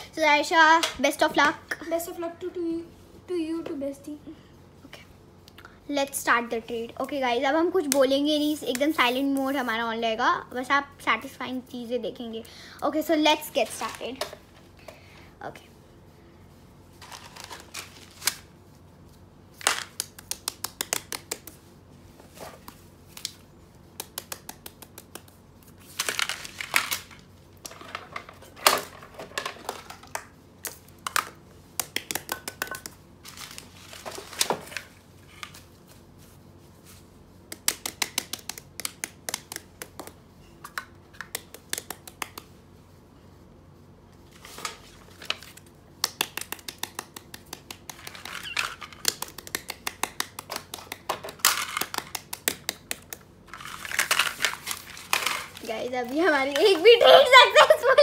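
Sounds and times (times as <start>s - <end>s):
toys tapped on paper: 19.6s - 21.6s, 23.9s - 25.4s, 31.0s - 33.0s, 37.5s - 42.5s, 46.0s - 53.3s.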